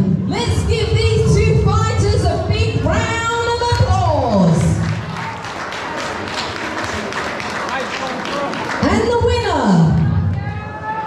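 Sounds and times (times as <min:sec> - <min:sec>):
crowd applauding: 0:04.5 - 0:11.0.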